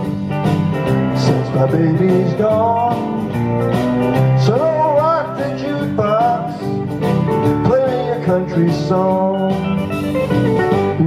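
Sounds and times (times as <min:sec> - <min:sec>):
country music backing track: 0:00.0 - 0:11.0
man singing karaoke: 0:01.0 - 0:09.9.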